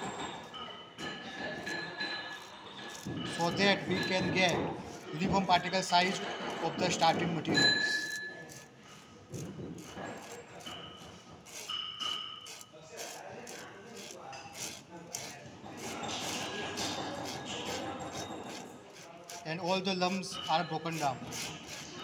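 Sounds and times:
fingers rubbing powder through sieve: 9.4s - 10.8s, 11.4s - 22.0s.

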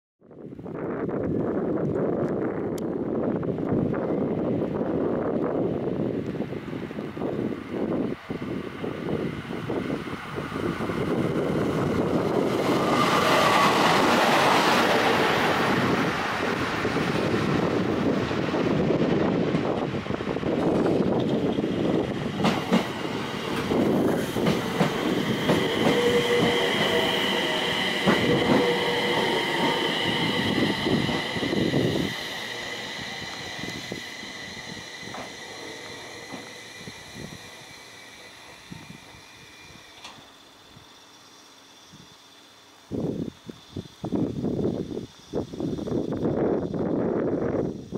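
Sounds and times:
train rail rumble: 0.6s - 47.9s
high brake whine: 6.5s - 47.9s.

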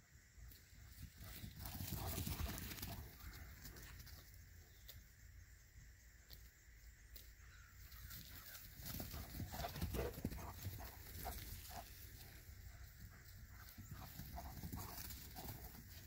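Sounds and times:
dogs running and scuffling: 1.1s - 4.3s, 8.1s - 16.0s.

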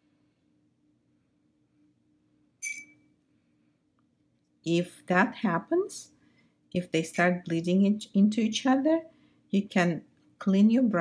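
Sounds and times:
faint room hum: 0.0s - 11.0s.

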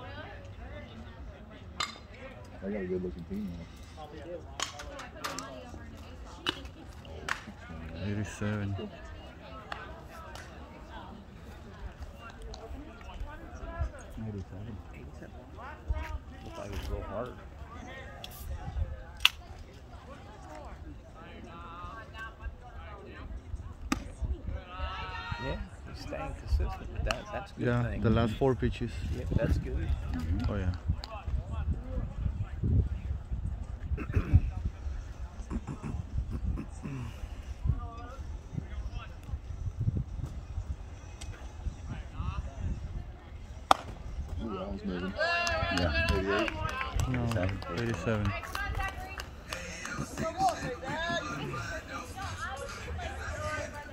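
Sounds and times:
people talking: 0.0s - 33.1s, 33.9s - 39.4s, 41.8s - 53.9s
bat striking baseball: 43.7s - 44.0s
voices calling out: 45.0s - 53.9s.

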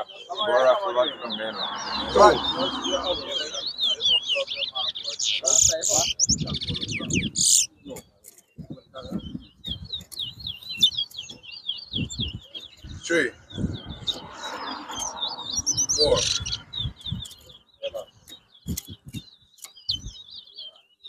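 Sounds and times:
finch singing warbling twitter: 0.0s - 21.0s.

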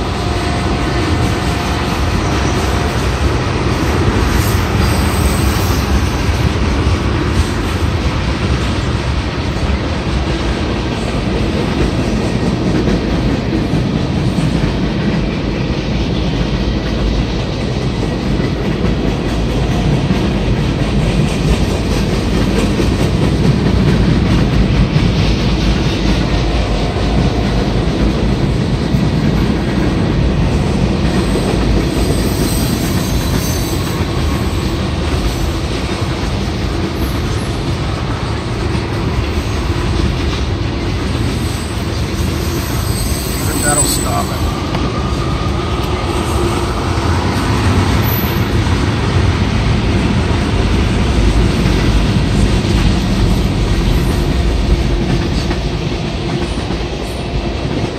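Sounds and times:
freight train wheels rumbling on rails: 0.0s - 57.9s.

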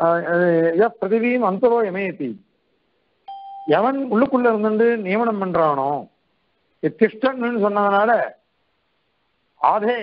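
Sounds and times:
short electronic beep: 3.3s - 3.8s
person speaking: 3.7s - 6.2s, 9.6s - 10.0s.

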